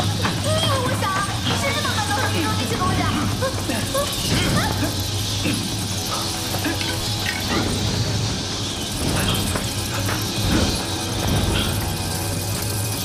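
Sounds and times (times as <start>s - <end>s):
high hissing chitter: 0.0s - 13.0s
low drone: 0.0s - 13.0s.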